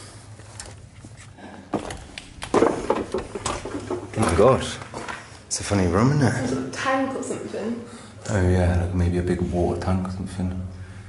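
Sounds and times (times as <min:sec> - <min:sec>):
footsteps crunching on rubble: 0:00.7 - 0:05.4.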